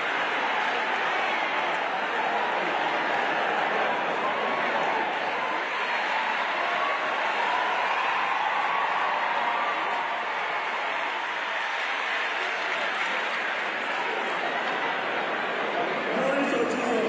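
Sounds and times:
congregation applauding: 0.0 - 17.0
crowd voices: 0.0 - 17.0.

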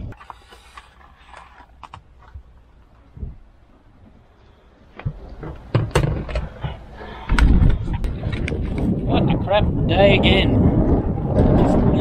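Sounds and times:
wind buffeting microphone: 3.0 - 4.2, 5.0 - 12.0.

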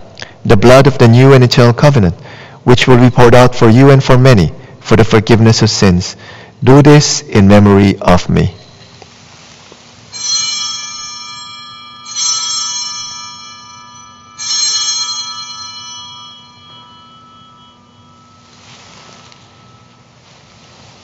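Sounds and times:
altar bells ringing: 10.1 - 21.0.

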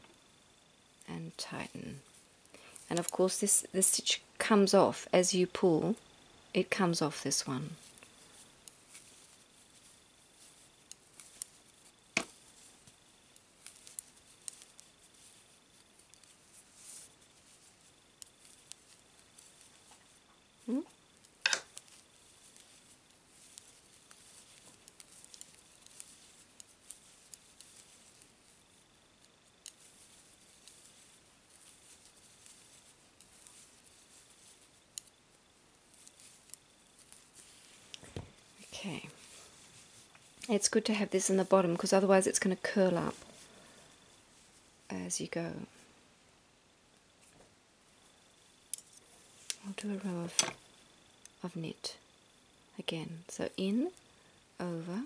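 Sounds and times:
faint rustle of wool: 1.0 - 6.0, 6.7 - 46.1, 47.0 - 51.2
knitting needles clicking: 2.8 - 3.2, 8.0 - 12.7, 13.3 - 17.6, 18.2 - 38.2, 48.6 - 50.6.

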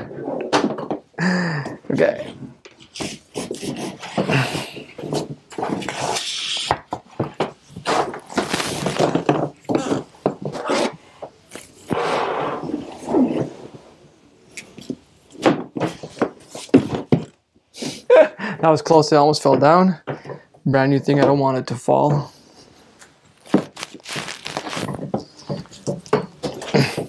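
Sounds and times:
cable rubbing and rustling: 7.6 - 12.0, 23.3 - 26.7.

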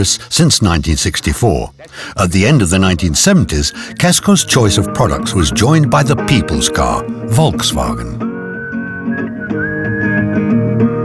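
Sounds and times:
plucked acoustic guitar: 1.8 - 11.0
whistled melody: 2.6 - 11.0.

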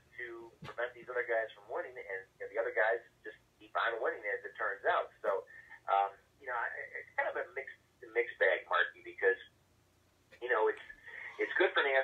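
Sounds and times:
person talking over telephone: 0.0 - 9.5, 10.4 - 12.0.

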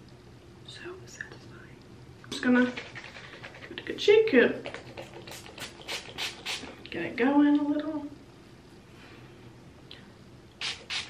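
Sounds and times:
spray bottle pump hisses: 5.0 - 6.7, 10.6 - 11.0.

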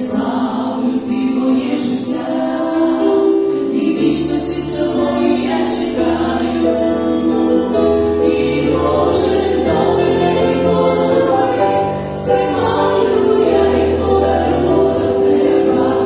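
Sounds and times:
piano accompaniment: 0.0 - 16.0
women singing in harmony: 0.0 - 16.0.

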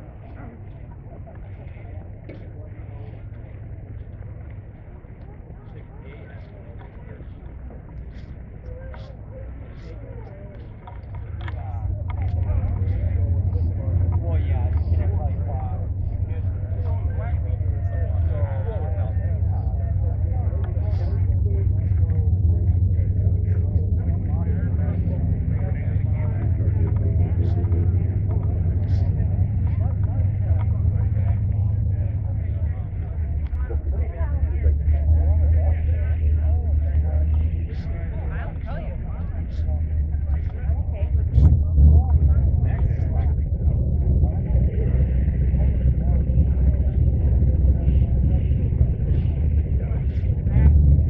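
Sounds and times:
people chattering: 0.0 - 51.0
steady low rumble: 0.0 - 51.0.

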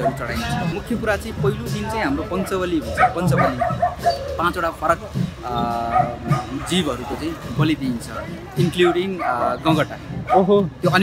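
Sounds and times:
people talking: 0.0 - 3.7.

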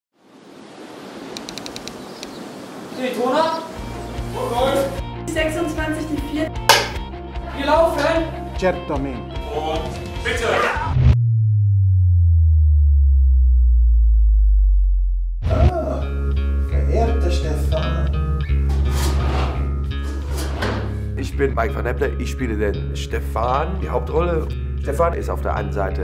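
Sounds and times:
light clicks: 1.3 - 2.4
deep electronic bass tone sliding down: 10.9 - 15.7.

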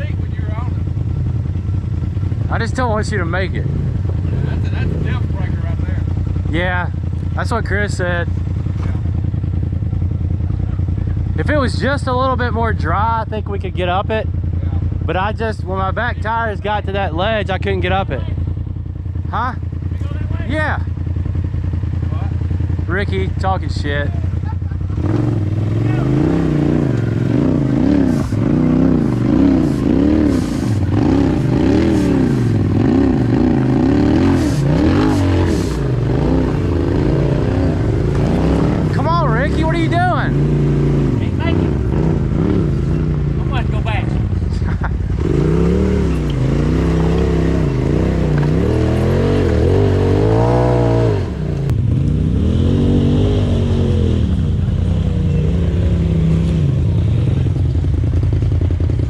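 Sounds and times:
off-road vehicle engines revving: 0.0 - 59.0.

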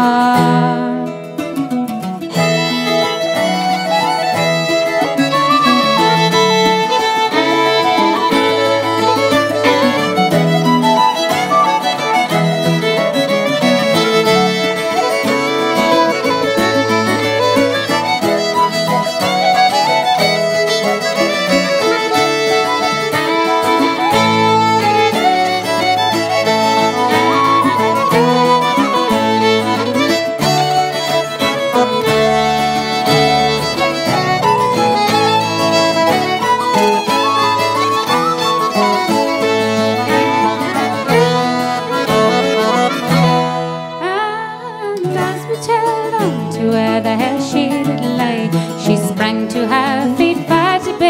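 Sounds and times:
fiddle playing folk tune: 0.0 - 51.0
plucked-string accompaniment: 0.0 - 51.0.

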